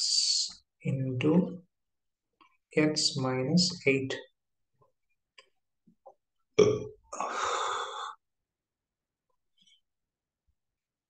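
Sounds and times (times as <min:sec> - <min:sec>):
man's throaty vocal sound: 0:06.6 - 0:08.1.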